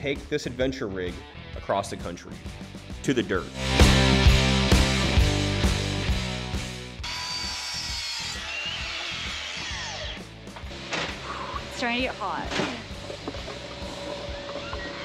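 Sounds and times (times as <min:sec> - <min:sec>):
guitar music: 0:03.5 - 0:07.0.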